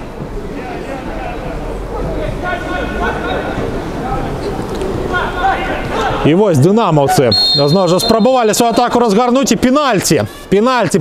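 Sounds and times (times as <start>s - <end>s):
players calling out: 7.3s - 9.7s.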